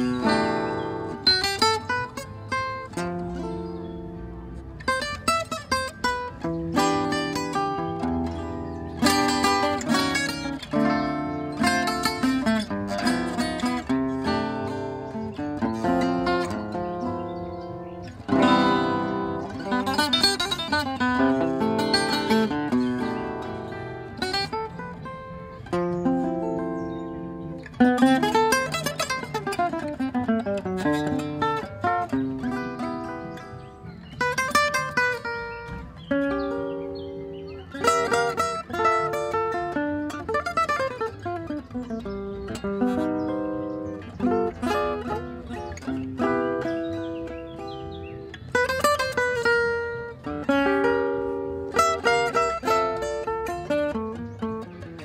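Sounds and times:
acoustic jazz guitar playing: 0.0s - 55.0s.

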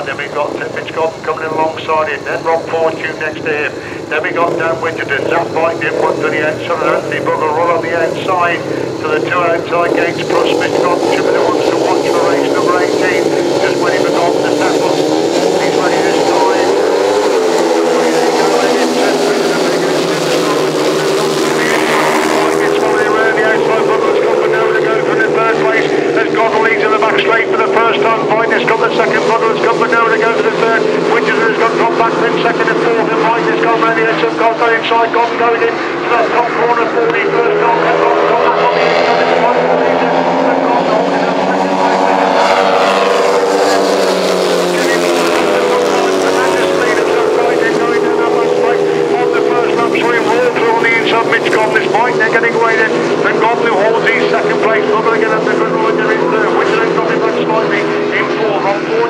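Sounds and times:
motorcycle engines revving hard: 0.0s - 59.0s
motorcycle passing close: 4.4s - 34.4s, 35.2s - 55.0s.

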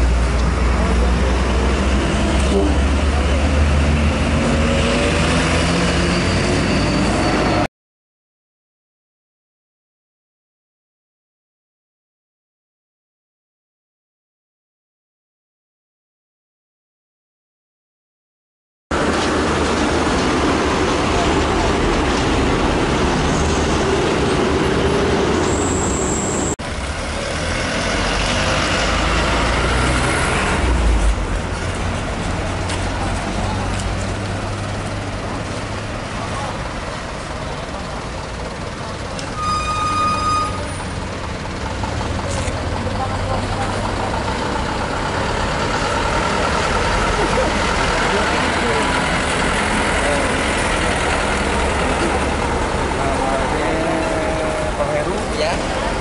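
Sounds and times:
traffic engine rumble: 0.0s - 7.7s, 18.9s - 56.0s
car horn: 2.4s - 3.0s, 39.4s - 40.8s.

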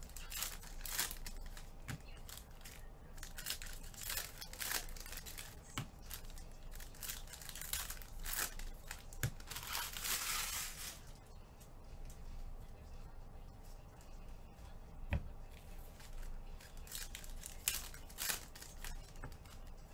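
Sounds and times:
foil wrappers crinkling and ripping: 0.0s - 11.2s, 15.9s - 19.8s.

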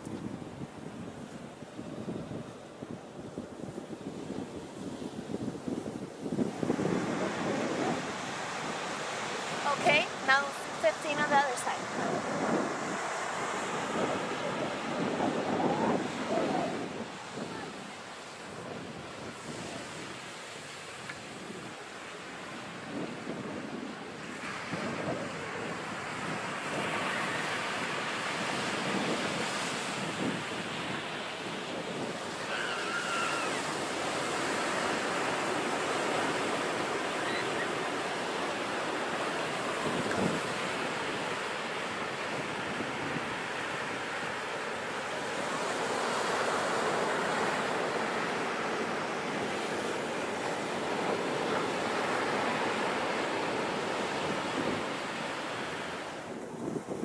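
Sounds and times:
wind buffeting microphone: 0.0s - 57.0s
ocean surf breaking: 3.8s - 57.0s.

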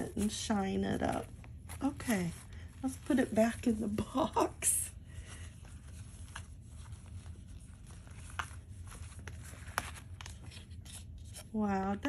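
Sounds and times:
soft rustling: 0.0s - 11.6s
low steady hum: 0.0s - 12.0s.

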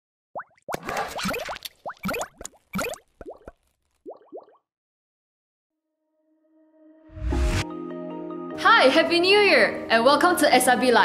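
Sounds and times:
cartoon pops and bloops: 0.4s - 4.6s.

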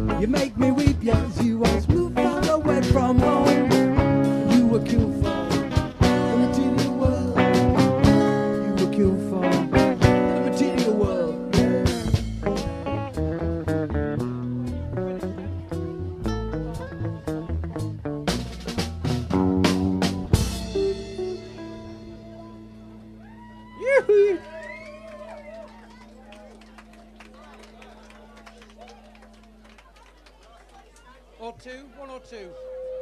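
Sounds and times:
live band music: 0.0s - 25.3s
crowd chattering: 0.0s - 33.0s
drum and cymbal hits: 0.4s - 13.1s, 18.3s - 21.8s.

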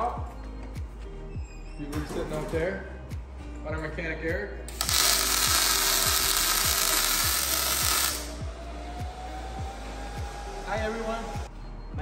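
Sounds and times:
welding arc hissing: 4.7s - 8.4s.

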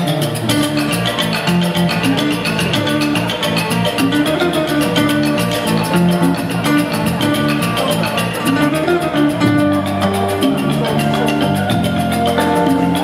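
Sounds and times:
electric bass line: 0.0s - 13.0s
electric guitar: 0.0s - 13.0s
hand drum: 0.0s - 13.0s
wooden mallet percussion: 0.0s - 13.0s
bamboo flute melody: 5.4s - 13.0s.

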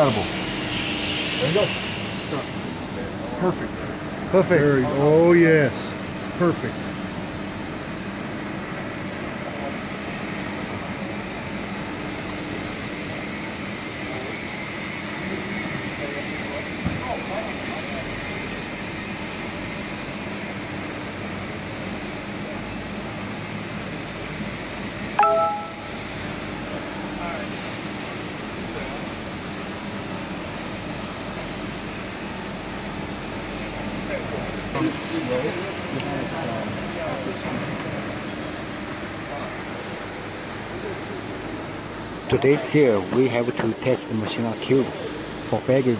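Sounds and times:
factory machinery hum: 0.0s - 45.9s
short loud ringing tone: 25.2s - 26.2s.

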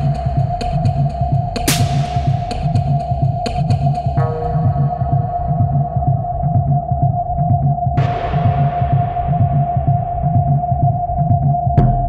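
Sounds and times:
pulsing bassline: 0.0s - 12.0s.

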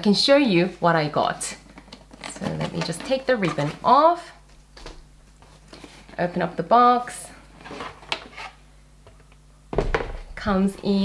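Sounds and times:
cardboard lid rustle and scrape: 2.3s - 3.9s, 7.6s - 8.6s.

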